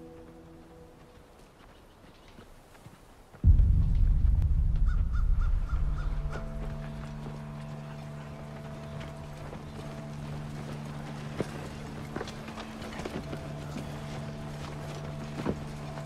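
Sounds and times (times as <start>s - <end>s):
deep low rumble: 3.4s - 12.1s
sustained low drone: 3.4s - 16.0s.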